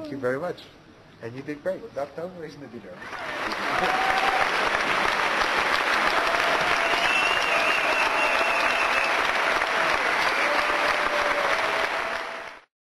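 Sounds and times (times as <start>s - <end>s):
audience applauding: 3.0s - 12.7s.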